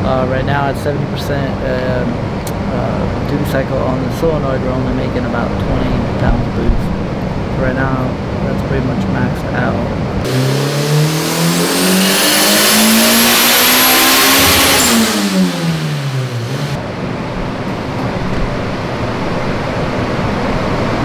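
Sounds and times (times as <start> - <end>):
cooling fan rushing: 0.0 - 21.0
high turbo whine: 0.0 - 21.0
car engine revving at full throttle: 10.0 - 21.0.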